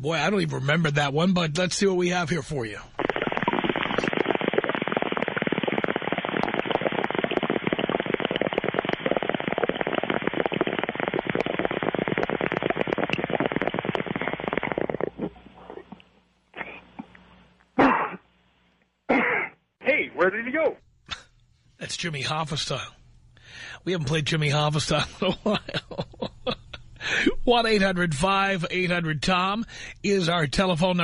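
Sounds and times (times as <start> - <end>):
water bubbling through a bong: 2.9 - 17.2.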